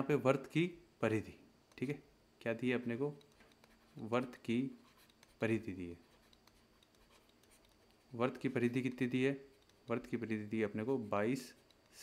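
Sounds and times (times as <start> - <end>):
stylus scratching and tapping: 3.1 - 12.0.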